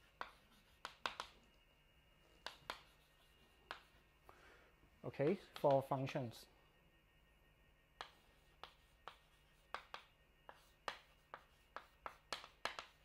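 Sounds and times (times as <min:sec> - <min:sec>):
chalk tapping and scratching on blackboard: 0:00.0 - 0:01.4, 0:02.4 - 0:04.1, 0:05.3 - 0:05.8, 0:08.0 - 0:13.0.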